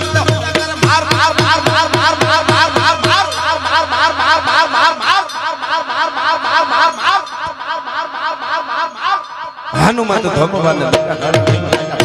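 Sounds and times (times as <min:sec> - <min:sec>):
tabla strokes: 0:00.0 - 0:05.8, 0:09.2 - 0:12.0
harmonium: 0:00.0 - 0:07.2
person singing: 0:00.0 - 0:11.4.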